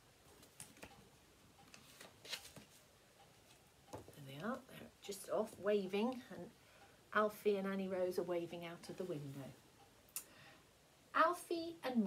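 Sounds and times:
paper page turning rustle: 0:01.7 - 0:02.8.

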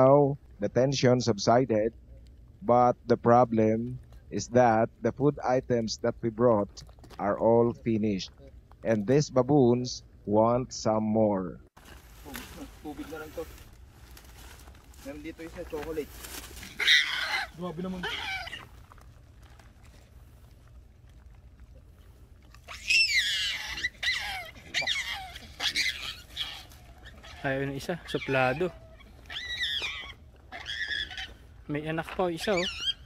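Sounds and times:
baboons crying: 0:15.3 - 0:19.0, 0:22.6 - 0:33.0.

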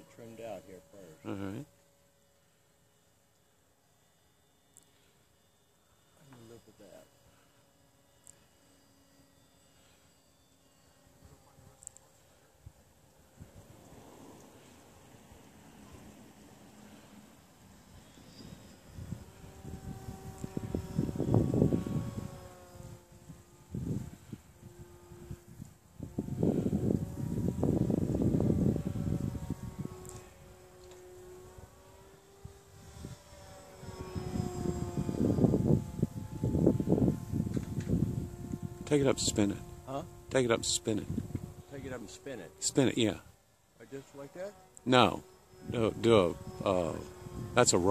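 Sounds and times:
model airplane motor droning: 0:00.0 - 0:47.9.

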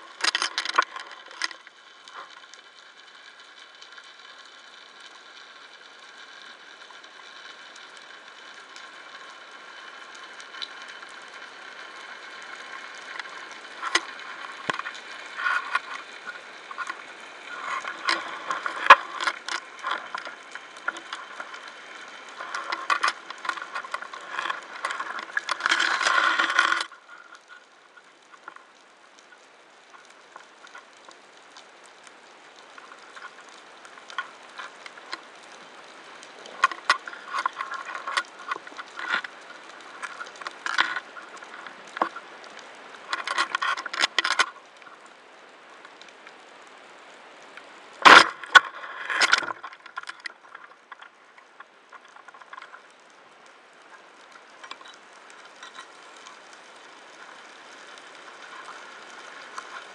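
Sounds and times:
underwater clicks and crackles: 0:00.0 - 0:59.9.

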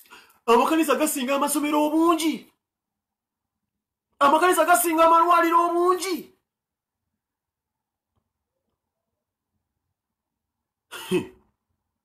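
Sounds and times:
man clearing his throat: 0:10.9 - 0:11.5.

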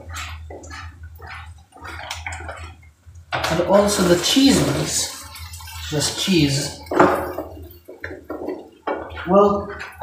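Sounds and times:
kitchen utensils clattering: 0:03.3 - 0:10.0.

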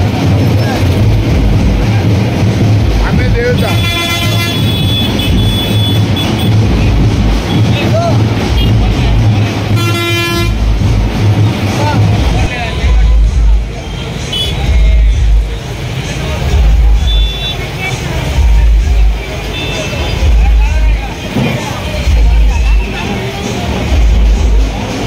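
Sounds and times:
people's voices: 0:00.0 - 0:25.0
vehicle horn toot: 0:03.6 - 0:06.6, 0:09.8 - 0:10.6, 0:14.3 - 0:14.6.

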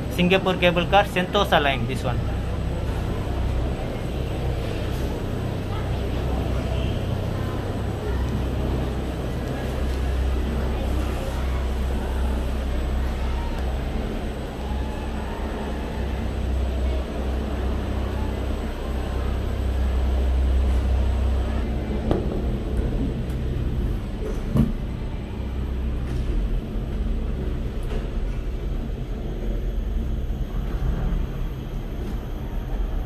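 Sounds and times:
cable car rumble: 0:00.0 - 0:33.0.

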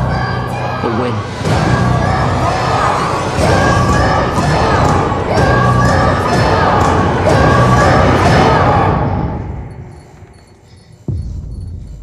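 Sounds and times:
children yelling battle cry: 0:00.0 - 0:09.4.

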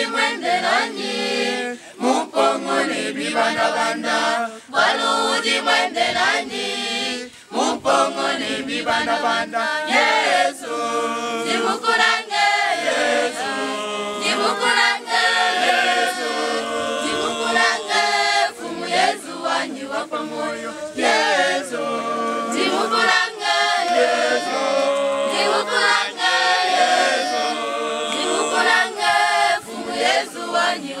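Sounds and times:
church choir singing: 0:00.0 - 0:31.0.

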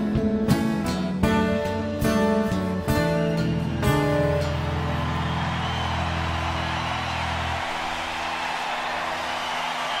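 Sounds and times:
audience applauding: 0:03.7 - 0:10.0.

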